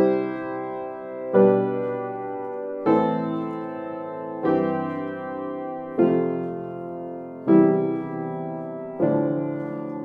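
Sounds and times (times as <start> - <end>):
piano chords: 0.0 - 10.0.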